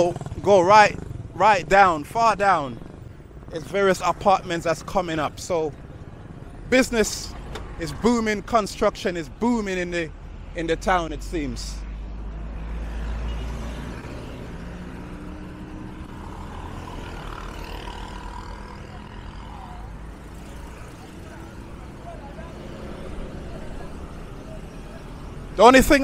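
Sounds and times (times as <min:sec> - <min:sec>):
passing traffic: 0:00.0 - 0:26.0.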